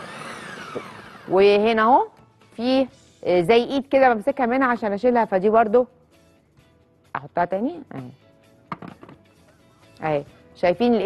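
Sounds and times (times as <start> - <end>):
faint background music: 1.2 - 11.0
plastic knock and clicks: 8.7 - 9.2.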